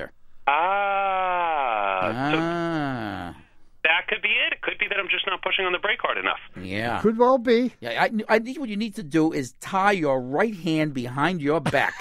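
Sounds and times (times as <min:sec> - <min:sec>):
man talking over telephone: 0:03.9 - 0:08.7.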